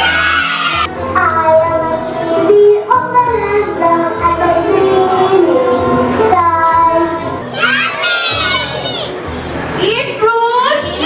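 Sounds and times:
backing music: 0.0 - 11.0
child singing: 1.1 - 9.1.

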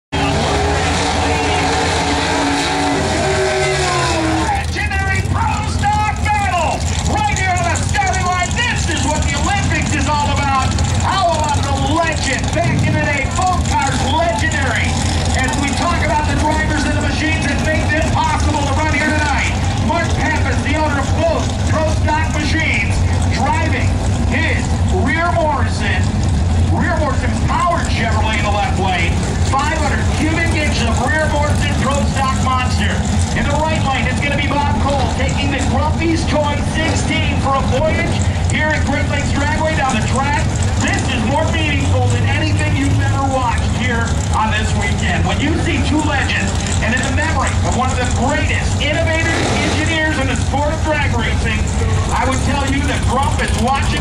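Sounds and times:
drag car engine revving: 0.0 - 54.0
people's voices: 0.1 - 54.0.

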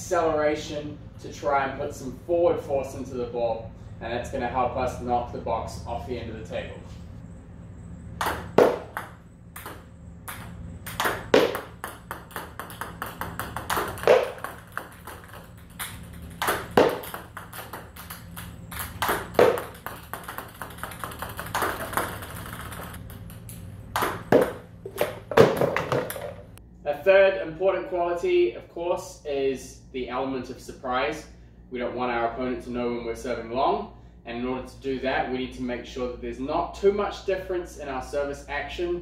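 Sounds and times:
ball striking cardboard box: 8.2 - 23.0, 23.9 - 26.4
ping pong balls bouncing away: 8.2 - 26.6.

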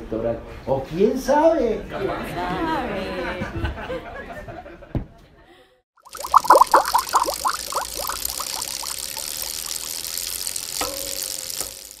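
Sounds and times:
watery bloops falling in pitch: 6.0 - 11.6.

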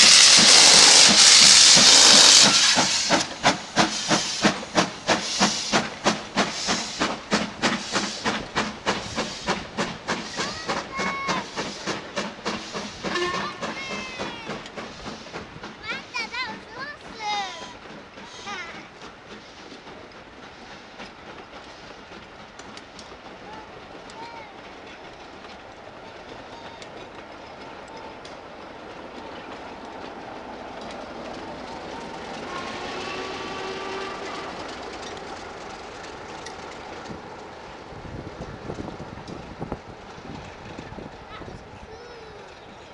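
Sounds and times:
diesel locomotive engine rumble: 0.0 - 42.9
train wheels clicking over rail joints: 0.0 - 42.9.

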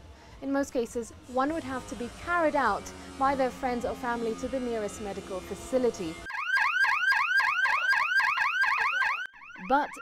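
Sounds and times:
electronic siren warbling: 6.1 - 10.0.

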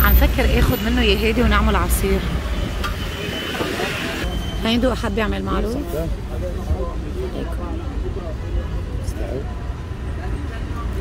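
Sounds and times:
murmur of distant voices: 0.0 - 11.0
traffic rumbling: 0.0 - 11.0.

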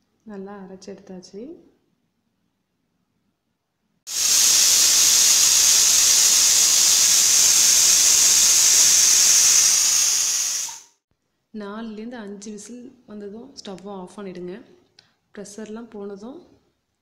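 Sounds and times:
pressure cooker venting steam: 4.1 - 11.0.

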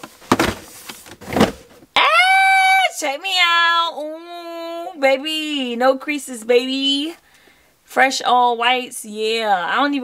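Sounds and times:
cardboard boxes scraping on shelf: 0.0 - 1.8.

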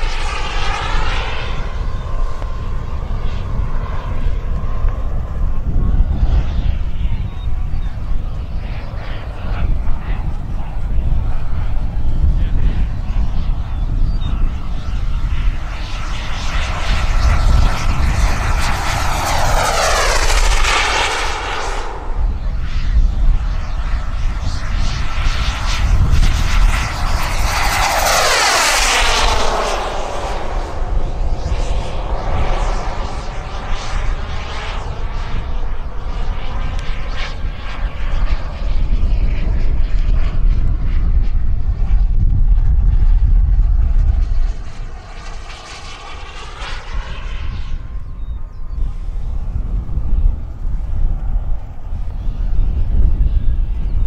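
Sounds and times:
model jet turbine whining: 0.0 - 54.0
wind rumble on microphone: 0.0 - 54.0.

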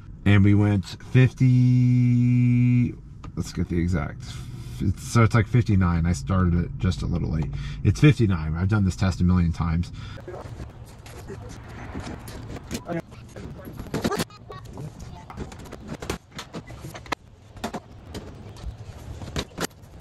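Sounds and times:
low hum: 0.0 - 20.0.

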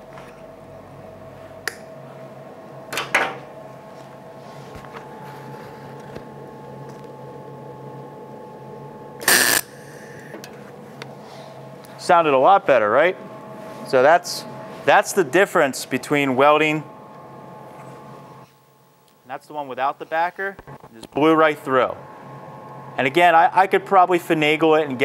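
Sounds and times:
steady low hum: 0.0 - 25.0
welding arc crackle and hiss: 9.2 - 10.4.

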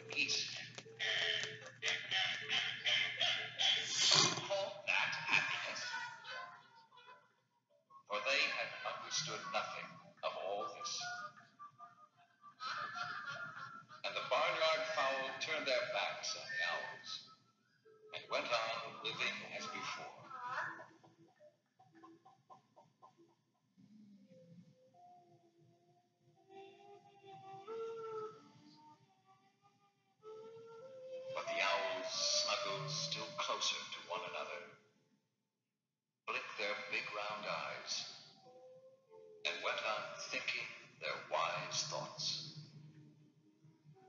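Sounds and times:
chickens clucking: 0.0 - 5.9, 18.2 - 23.5
background music: 8.0 - 21.6, 23.8 - 34.8, 36.3 - 44.0.

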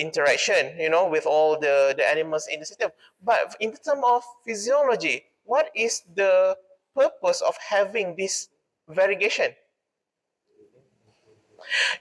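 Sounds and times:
man speaking: 0.0 - 9.6.

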